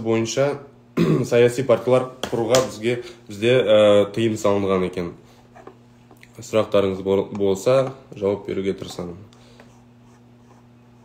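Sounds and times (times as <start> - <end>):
steady low hum: 0.0 - 11.0
man speaking: 6.4 - 9.3.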